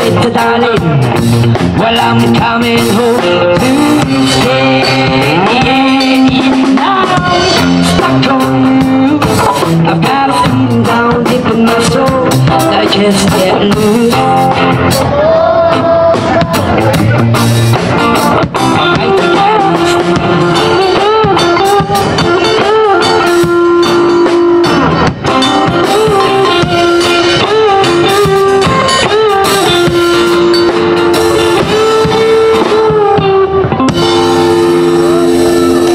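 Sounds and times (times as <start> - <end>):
electric guitar lead: 0.0 - 35.9
reggae band playing: 0.0 - 35.9.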